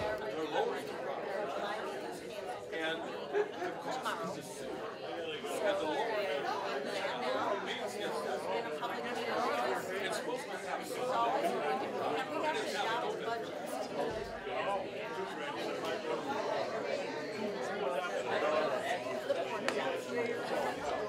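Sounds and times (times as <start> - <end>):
people chattering: 0.0 - 21.0.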